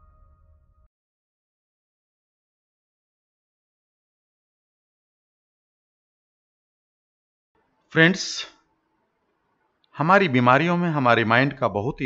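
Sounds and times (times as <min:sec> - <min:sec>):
man speaking: 0:08.0 - 0:08.5, 0:10.0 - 0:12.0.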